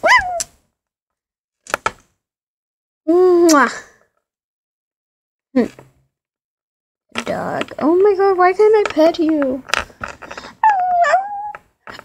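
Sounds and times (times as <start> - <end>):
child imitating dog whimper: 0.0 - 0.4, 10.6 - 11.6
plastic toys tapping on table: 7.2 - 10.5.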